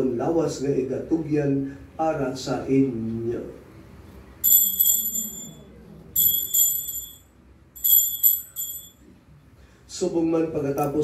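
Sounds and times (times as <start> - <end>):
hand bell jingling: 4.4 - 5.6, 6.2 - 7.2, 7.8 - 9.0.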